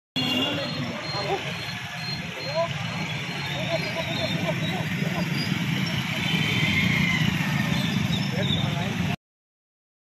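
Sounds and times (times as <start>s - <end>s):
crowd talking: 0.2s - 6.5s.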